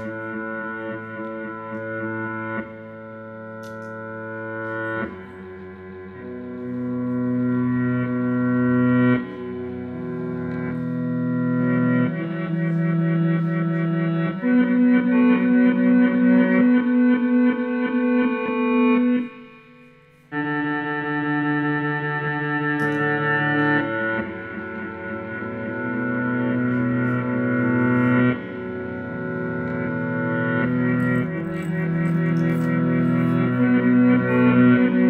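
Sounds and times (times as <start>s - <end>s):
distorted electric guitar chords: 0.0s - 35.0s.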